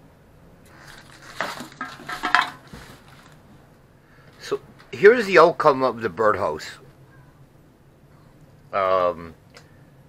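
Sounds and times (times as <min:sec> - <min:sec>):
wooden pieces clattering: 0:00.7 - 0:03.4.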